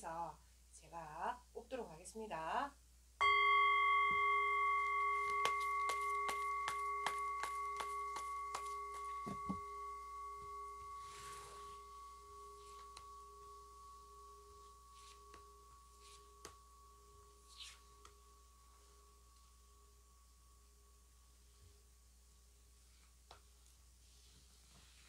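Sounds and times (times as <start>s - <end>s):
singing bowl ringing: 3.2s - 21.8s.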